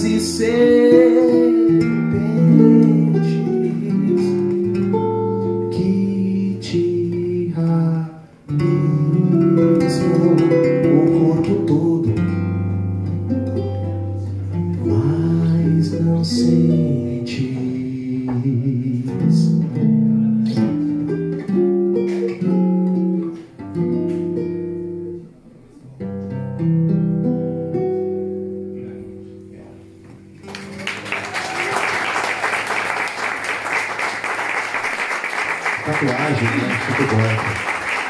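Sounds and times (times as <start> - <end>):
acoustic guitars playing: 0.0 - 31.5
audience applause: 30.4 - 38.0.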